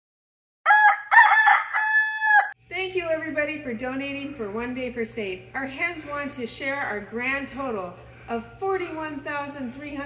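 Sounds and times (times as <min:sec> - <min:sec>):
rooster crowing: 0:00.6 - 0:02.6.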